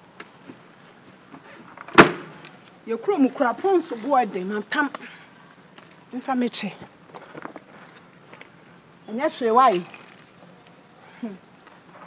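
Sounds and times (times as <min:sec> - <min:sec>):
plastic box lid slamming shut: 0:01.9 - 0:02.4.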